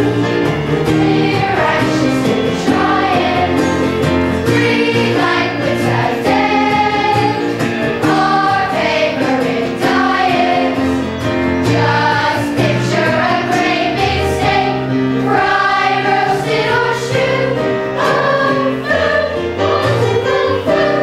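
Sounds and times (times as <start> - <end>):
children's chorus singing: 0.0 - 11.0, 11.6 - 21.0
live accompaniment: 0.0 - 21.0.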